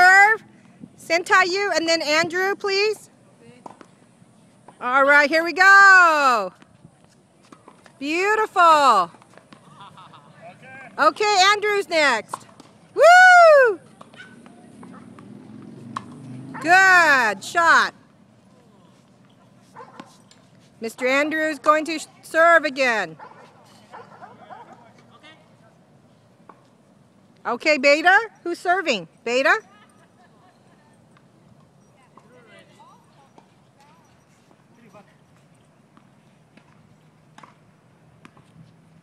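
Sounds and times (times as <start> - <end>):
tennis racket hitting ball: 14.0 - 16.8.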